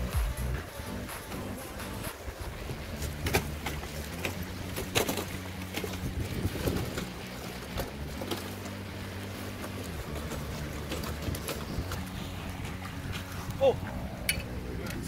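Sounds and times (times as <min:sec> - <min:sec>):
boots sloshing through water: 0:01.8 - 0:14.2
wind on microphone: 0:05.8 - 0:07.2, 0:11.0 - 0:15.0.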